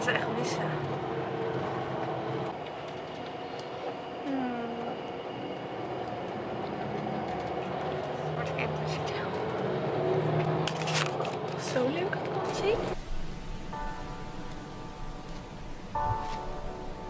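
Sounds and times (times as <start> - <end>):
bus engine and road noise: 0.0 - 13.1.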